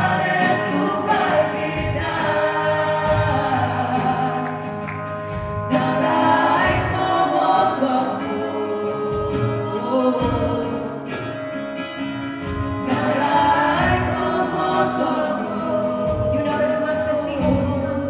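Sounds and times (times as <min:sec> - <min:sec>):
steady drum beat: 0:00.0 - 0:08.4, 0:12.0 - 0:18.0
voices singing: 0:00.0 - 0:11.3, 0:12.8 - 0:18.0
worship band playing: 0:00.0 - 0:18.0.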